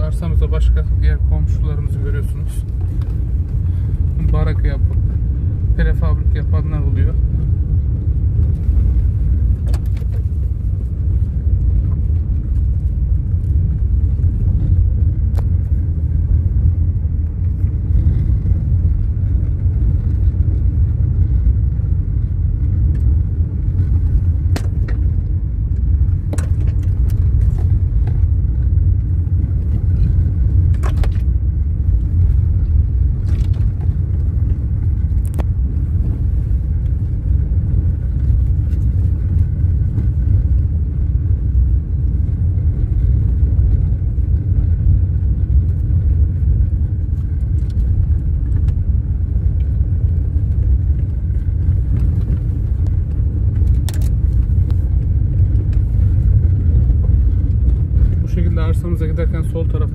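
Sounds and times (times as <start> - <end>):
engine and tyres rumbling on gravel: 0.0 - 59.9.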